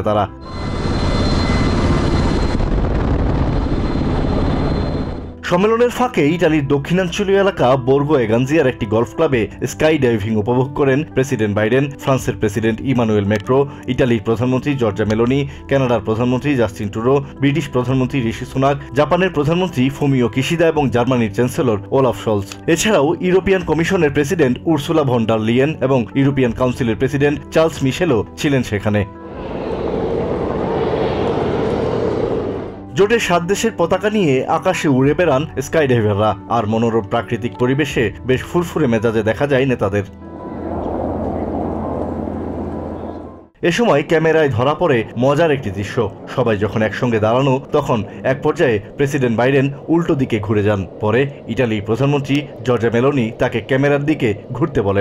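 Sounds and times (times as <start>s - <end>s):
aircraft engine noise: 0.4s - 5.4s, 29.2s - 32.9s, 40.2s - 43.5s, 44.1s - 55.0s
wind rushing: 0.5s - 5.4s, 29.2s - 33.0s, 40.2s - 55.0s.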